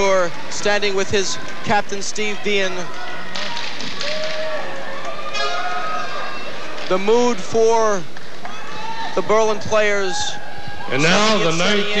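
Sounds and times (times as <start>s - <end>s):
crowd voices: 0.0s - 12.0s
crowd clapping: 2.8s - 5.2s.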